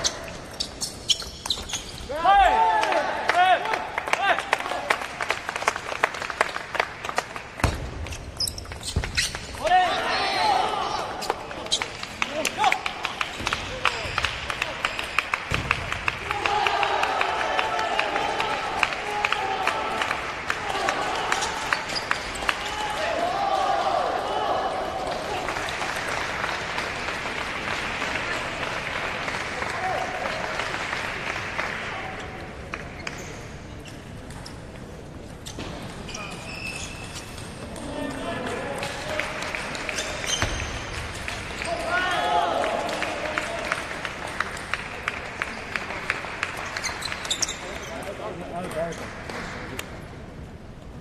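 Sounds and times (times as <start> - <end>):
voices and shouts: 2.1 - 4.9, 9.6 - 13.0.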